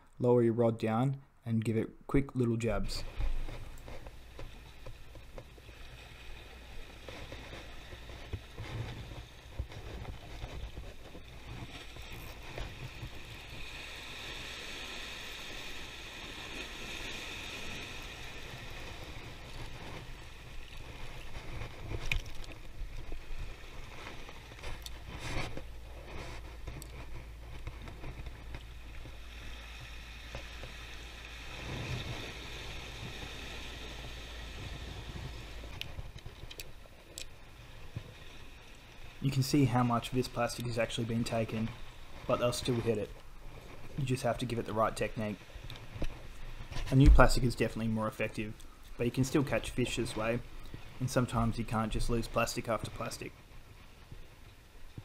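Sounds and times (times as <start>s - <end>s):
wind rumbling on microphone: 2.8s - 47.9s
sea water washing over rocks: 3.1s - 55.0s.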